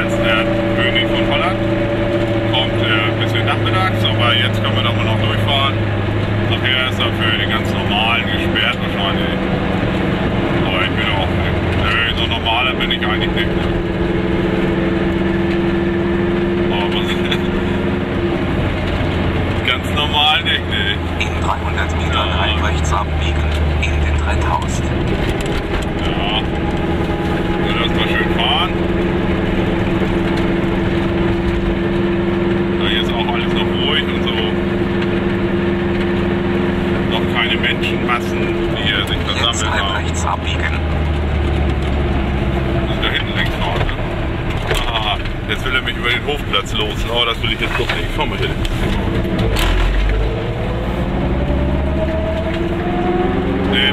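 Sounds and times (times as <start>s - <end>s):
two-stroke car engine running: 0.0s - 53.9s.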